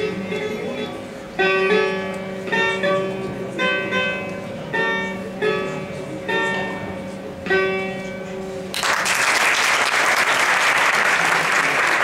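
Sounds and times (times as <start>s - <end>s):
long-necked lute plucked: 0.0s - 8.7s.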